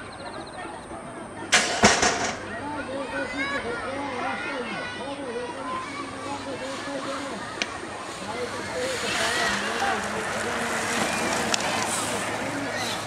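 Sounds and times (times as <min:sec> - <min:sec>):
crowd calling out and cheering: 0:00.0 - 0:13.0.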